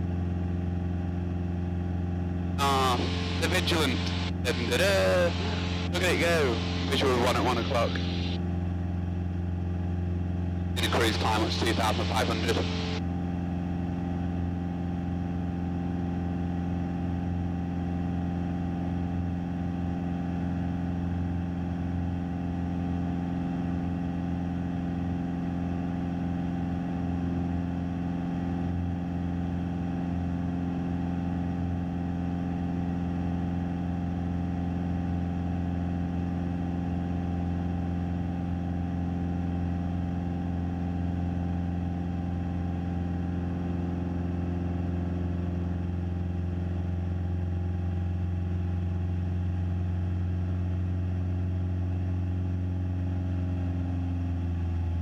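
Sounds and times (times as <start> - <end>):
propeller aircraft engine droning: 0.0 - 55.0
airflow noise: 2.6 - 8.4, 10.8 - 13.0.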